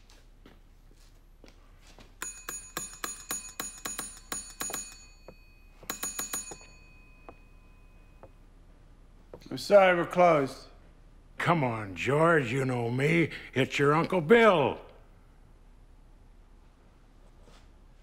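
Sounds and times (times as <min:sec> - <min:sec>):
counter service bell dinging: 0:02.2 - 0:08.6.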